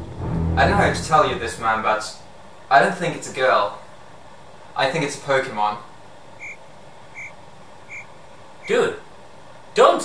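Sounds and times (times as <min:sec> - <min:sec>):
short high chirps: 0:06.4 - 0:06.6, 0:07.2 - 0:08.8.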